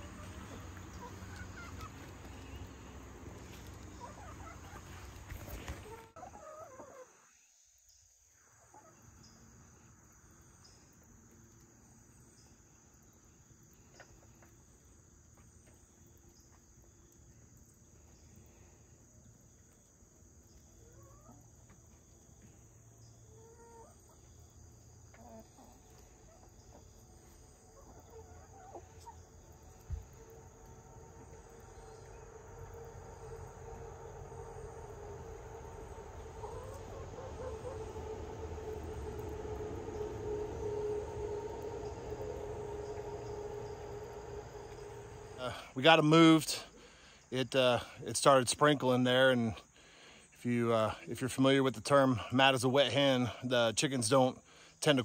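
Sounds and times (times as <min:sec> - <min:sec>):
hens clucking: 0:00.0 - 0:07.2, 0:25.0 - 0:33.5, 0:34.2 - 0:45.7.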